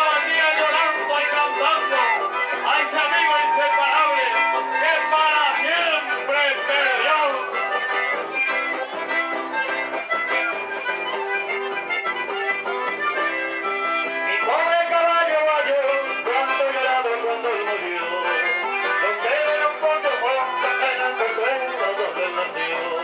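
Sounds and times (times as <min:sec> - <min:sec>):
accordion dance music: 0:00.0 - 0:23.0.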